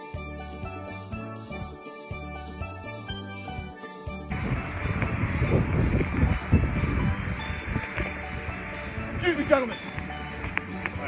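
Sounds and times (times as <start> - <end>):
background music: 0.0 - 11.0
wind buffeting microphone: 4.3 - 11.0.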